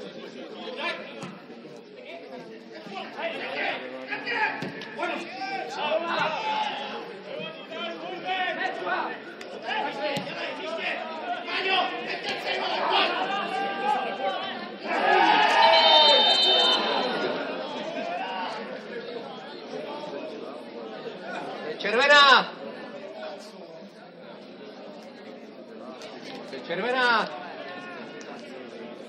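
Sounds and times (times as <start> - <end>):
people shouting: 14.8 - 17.4.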